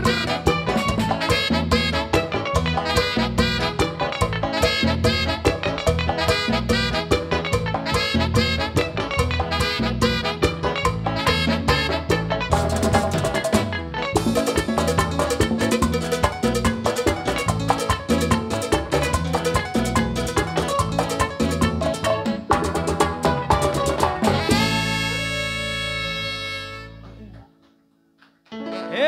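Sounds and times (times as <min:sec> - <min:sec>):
tropical dance band playing: 0:00.0 - 0:27.3, 0:28.6 - 0:29.0.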